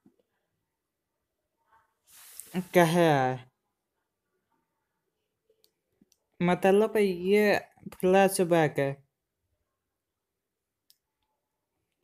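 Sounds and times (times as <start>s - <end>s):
narrator speaking: 2.2s - 3.5s, 6.4s - 9.0s.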